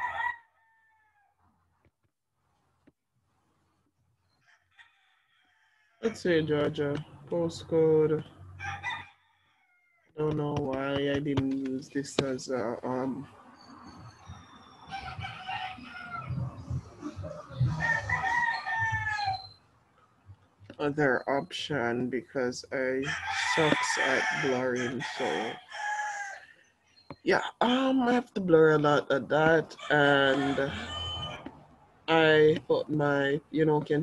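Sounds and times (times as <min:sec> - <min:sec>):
rooster crowing: 0:00.0 - 0:01.3, 0:04.4 - 0:06.0, 0:08.6 - 0:10.1, 0:14.8 - 0:16.7, 0:17.8 - 0:19.5, 0:23.1 - 0:26.5, 0:30.3 - 0:31.5.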